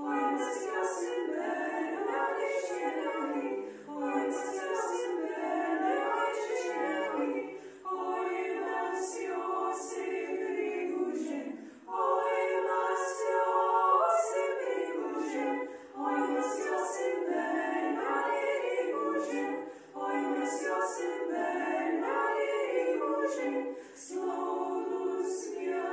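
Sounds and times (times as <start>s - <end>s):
women singing a cappella: 0.0s - 25.9s.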